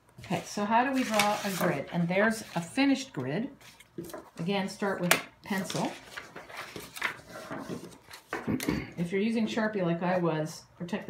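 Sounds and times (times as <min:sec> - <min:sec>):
paper rustling and sliding: 0:00.3 - 0:02.7, 0:03.6 - 0:04.4, 0:05.5 - 0:08.5.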